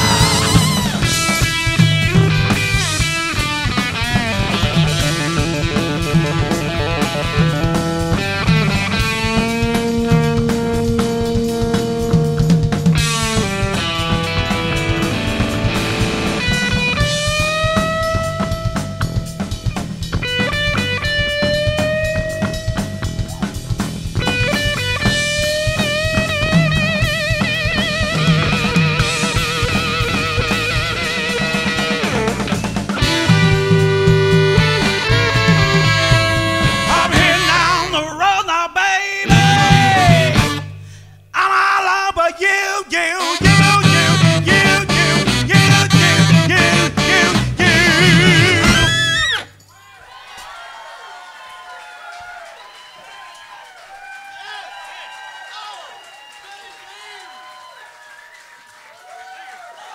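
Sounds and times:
audience cheering and calling out: 0.0s - 3.0s, 28.2s - 38.2s, 39.3s - 40.6s, 43.5s - 59.9s
electric guitar long held note: 0.0s - 19.3s, 24.3s - 38.2s, 43.4s - 49.5s
drum kit beat: 0.0s - 38.1s, 39.2s - 40.9s, 43.2s - 49.6s
bass guitar: 0.0s - 38.2s, 39.2s - 41.3s, 43.3s - 49.6s.

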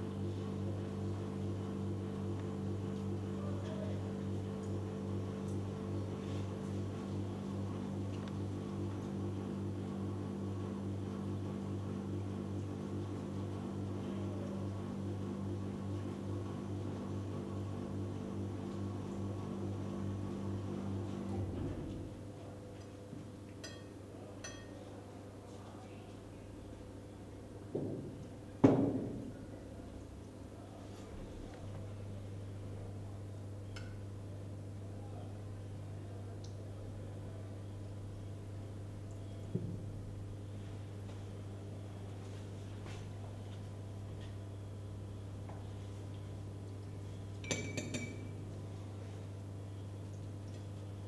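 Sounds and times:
low steady hum: 0.0s - 51.0s
metal spoon clinking on tableware: 23.6s - 24.8s, 47.4s - 48.3s.

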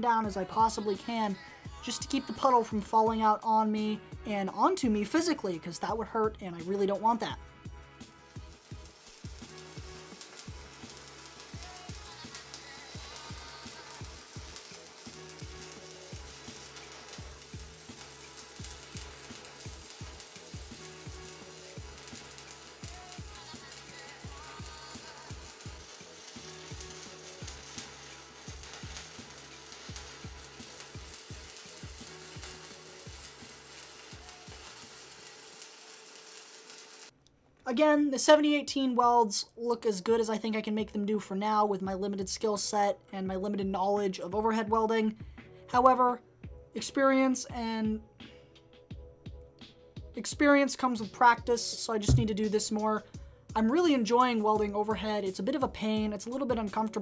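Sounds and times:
welding arc crackling: 8.0s - 37.2s, 52.1s - 52.5s.

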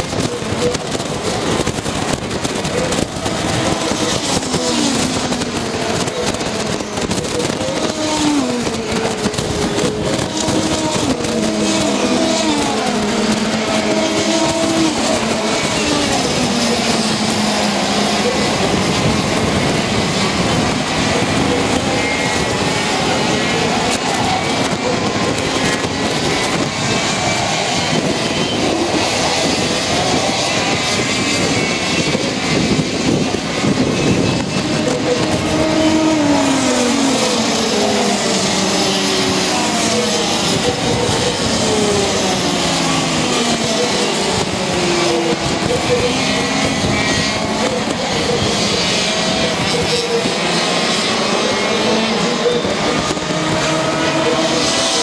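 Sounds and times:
racing kart engines: 0.0s - 55.0s.

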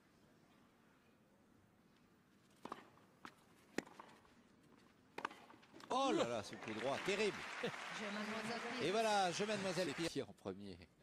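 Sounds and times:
racket hitting tennis ball: 2.5s - 4.2s, 5.1s - 5.9s
tennis ball bouncing: 2.5s - 4.3s, 5.1s - 5.9s.

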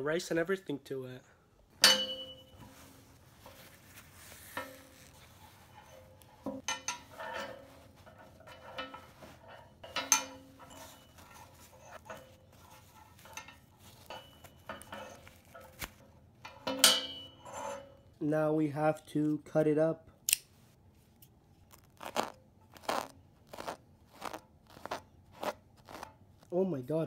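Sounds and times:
cloth rustling: 2.0s - 16.2s, 20.6s - 26.6s.

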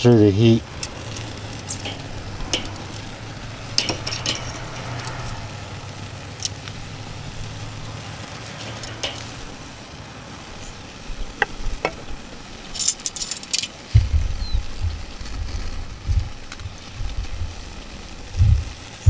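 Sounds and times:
vegetables sizzling on grill: 0.0s - 19.0s
tongs clicking on grill grate: 0.7s - 9.6s, 12.8s - 13.8s
low steady hum: 12.8s - 18.8s.

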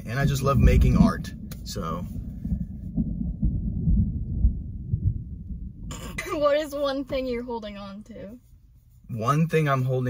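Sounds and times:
rain drumming on car roof: 0.0s - 4.6s, 5.8s - 7.7s.

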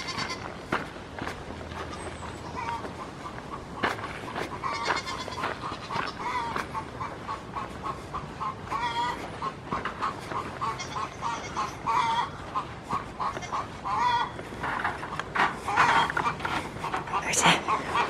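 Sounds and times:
goats bleating: 0.0s - 0.5s, 4.6s - 6.6s, 8.7s - 9.5s, 10.2s - 14.5s.

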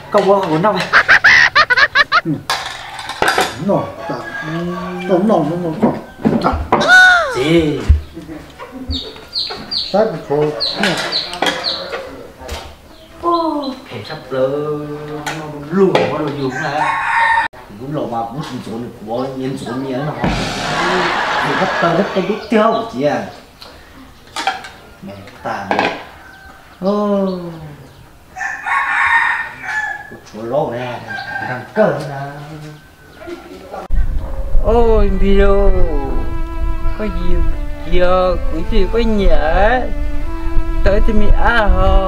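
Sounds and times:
rooster crowing: 4.0s - 6.3s, 16.5s - 17.5s, 28.4s - 30.1s
chickens peeping: 8.6s - 11.9s.

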